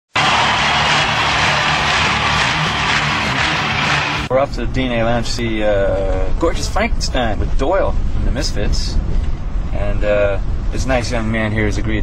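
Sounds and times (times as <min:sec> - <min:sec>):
loud dense intro music: 0:00.2 - 0:04.3.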